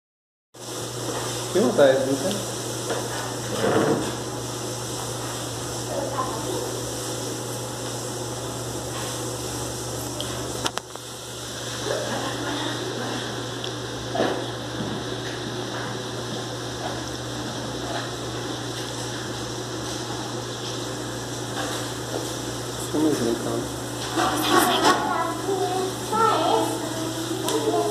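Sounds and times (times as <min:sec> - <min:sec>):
background hum and hiss: 0:00.6 - 0:27.9.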